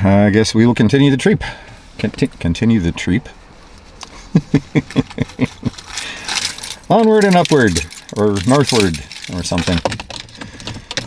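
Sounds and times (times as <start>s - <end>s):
man chuckling: 4.1s - 6.2s.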